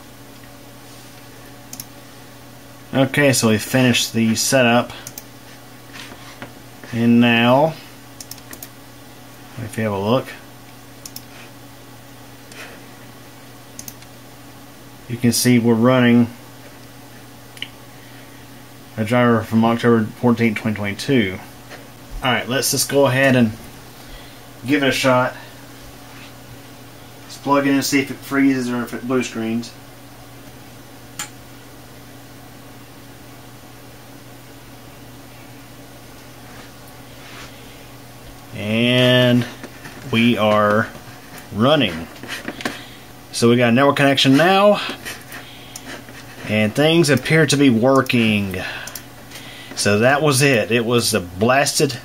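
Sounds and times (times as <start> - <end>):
desktop computer humming: 0.0 - 52.0
room hiss: 0.0 - 52.0.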